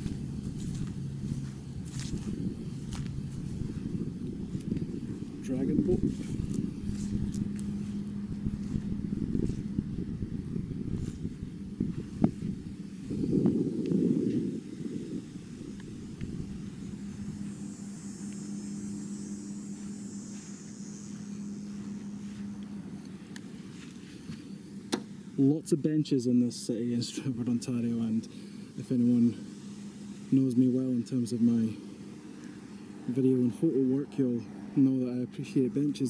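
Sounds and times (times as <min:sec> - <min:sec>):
wind buffeting microphone: 0:00.0 - 0:17.9
steady low hum: 0:00.0 - 0:36.0.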